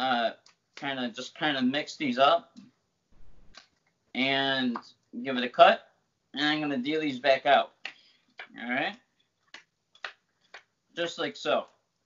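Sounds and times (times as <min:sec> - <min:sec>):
playing cards dealt onto table: 0:03.2 - 0:03.6.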